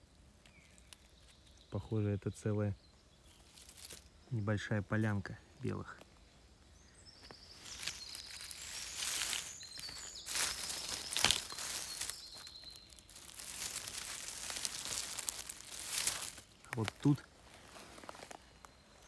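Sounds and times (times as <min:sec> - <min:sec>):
dry leaves and twigs rustling: 0:00.0 - 0:02.1, 0:02.9 - 0:19.0.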